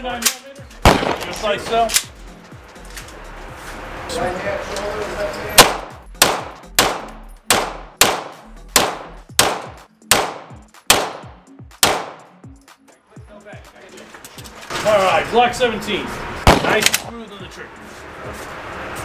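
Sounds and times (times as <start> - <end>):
pistol shots echoing: 0.8 - 1.5, 5.6 - 12.3, 16.5 - 17.1.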